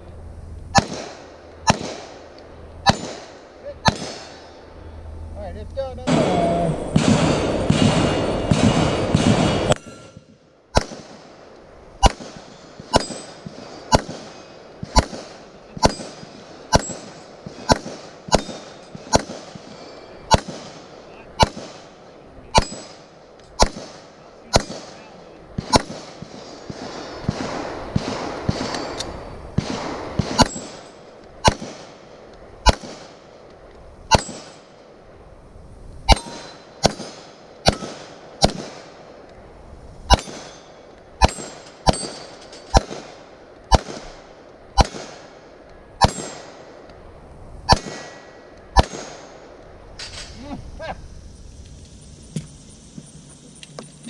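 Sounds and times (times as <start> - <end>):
handgun shots: 0.8 - 2.1, 2.9 - 4.4, 14.9 - 19.7, 31.4 - 31.9, 41.2 - 44.1, 44.8 - 45.2, 46.0 - 46.5, 48.8 - 49.3
bullets hitting steel plates: 2.8 - 4.6, 7.0 - 11.0, 12.0 - 20.8, 22.5 - 23.9, 25.6 - 29.2, 30.2 - 31.9, 34.1 - 34.7, 36.1 - 38.7, 40.1 - 44.1, 46.0 - 46.5.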